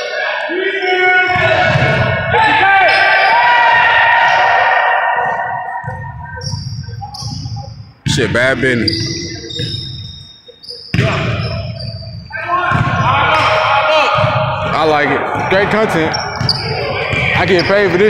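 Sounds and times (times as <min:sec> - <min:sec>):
short high squeaks: 0:08.7 - 0:12.3.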